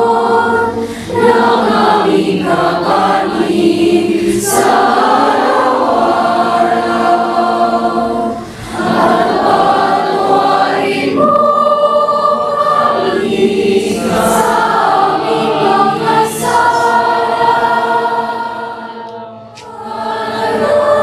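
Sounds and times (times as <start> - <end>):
girls' choir singing: 0.0 - 21.0.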